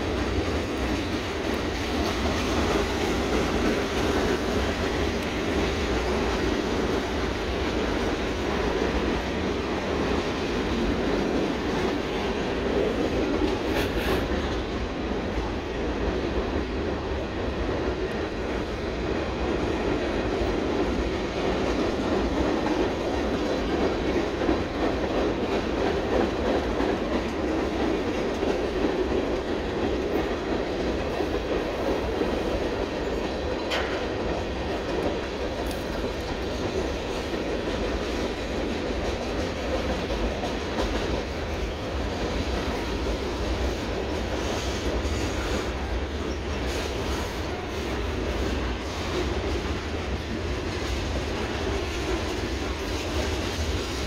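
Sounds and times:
freight train rumbling over trestle: 0.0 - 54.0.

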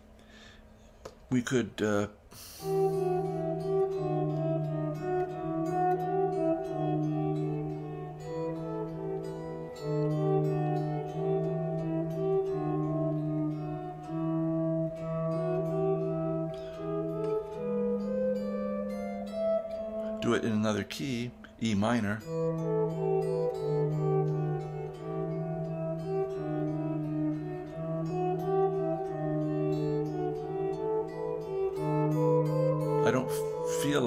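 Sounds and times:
fingerstyle electric guitar: 2.3 - 34.0.

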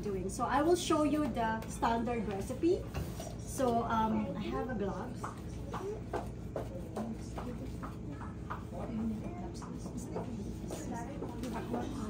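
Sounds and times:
steady low hum: 0.0 - 12.0
quiet chatter of voices: 2.7 - 12.0.

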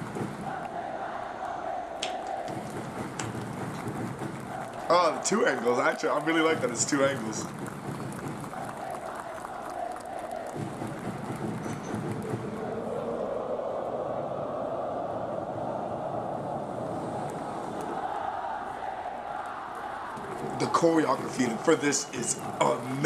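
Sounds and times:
football crowd chanting: 0.0 - 23.0.

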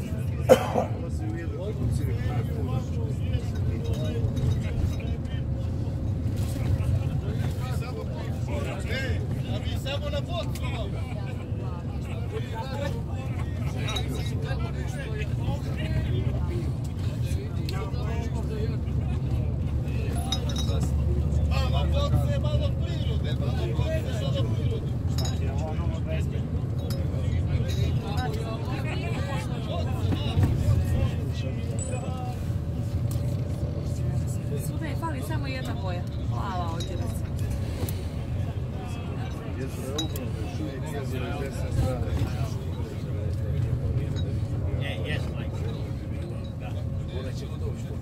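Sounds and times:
people talking: 0.0 - 48.0
vehicle cabin rumble: 0.0 - 48.0.

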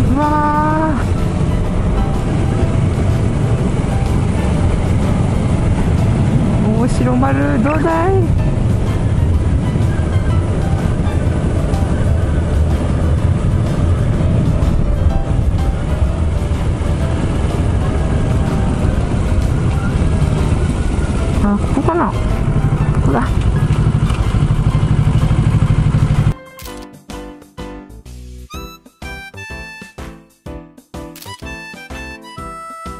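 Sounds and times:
motorcycle engine running: 0.0 - 26.4.

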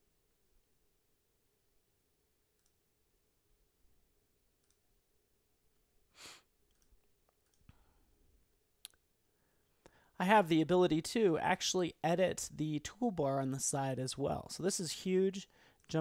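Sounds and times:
computer mouse clicks: 2.6 - 2.8, 4.6 - 4.8, 6.7 - 7.8.

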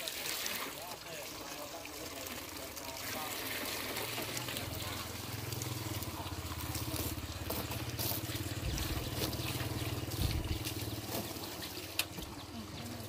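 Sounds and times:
water from hose splashing on glass: 0.0 - 13.0
low motor hum: 4.3 - 13.0.

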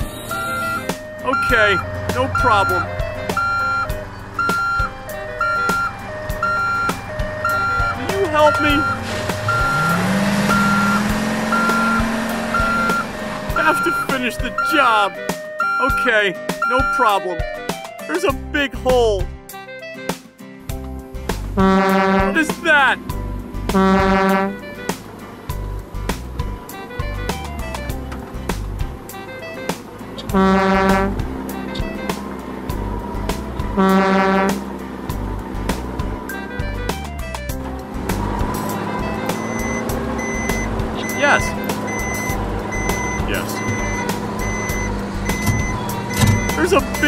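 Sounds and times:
two-tone electronic siren: 0.0 - 17.7, 38.6 - 47.0
cartoon background music: 0.0 - 47.0.

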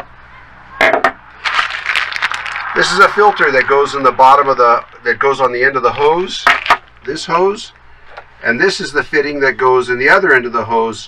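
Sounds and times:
plastic bag crinkling: 1.4 - 3.5.

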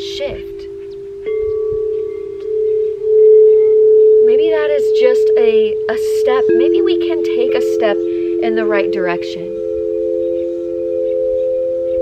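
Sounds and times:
higher singing bowl tone: 0.0 - 12.0
singing bowl ringing: 0.0 - 12.0.

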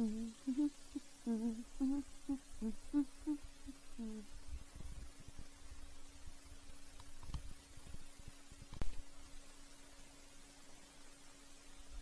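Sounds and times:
person humming low notes: 0.0 - 4.4.

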